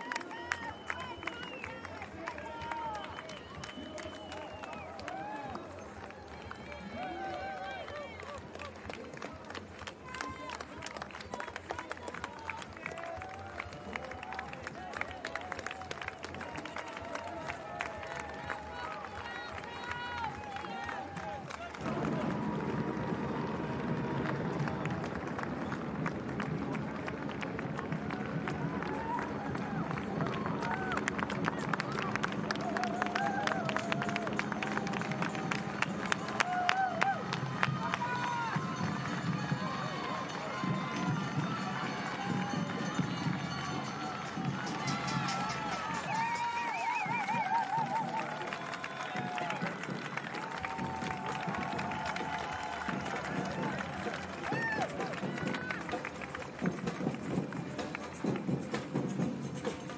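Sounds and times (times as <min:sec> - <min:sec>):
spectators shouting and cheering: 0:00.0 - 0:59.9
runners' footsteps on road: 0:00.2 - 0:59.8.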